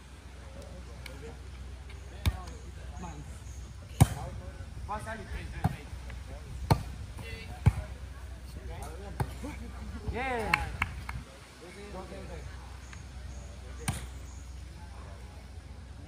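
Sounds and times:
volleyball being hit: 3.9 - 4.3, 7.5 - 7.9, 13.8 - 14.2.

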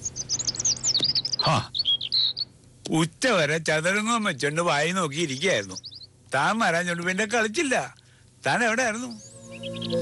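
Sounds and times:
small birds twittering: 0.0 - 3.0, 3.8 - 7.4, 8.0 - 10.0.

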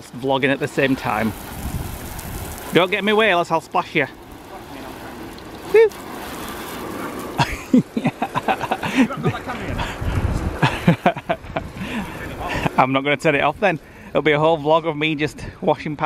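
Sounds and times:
hose spraying water on car: 0.0 - 14.3.

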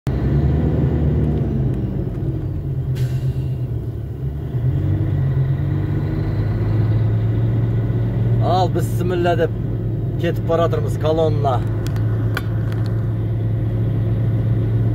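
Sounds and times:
road noise: 0.1 - 14.9
vehicle engine droning: 0.1 - 14.9
brief hiss: 3.0 - 3.6.

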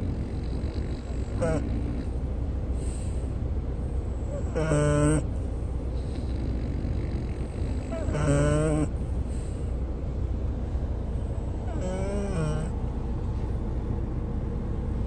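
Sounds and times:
dog snoring: 0.0 - 2.2, 4.1 - 5.3, 5.9 - 9.7, 10.7 - 12.9.

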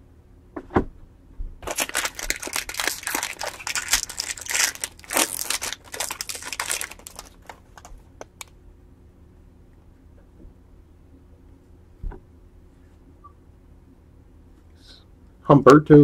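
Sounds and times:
foil wrapper crinkling: 1.6 - 8.5.

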